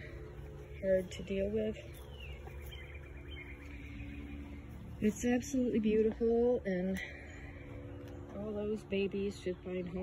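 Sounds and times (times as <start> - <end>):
low outdoor rumble: 0.0 - 10.0
songbird singing: 0.0 - 10.0.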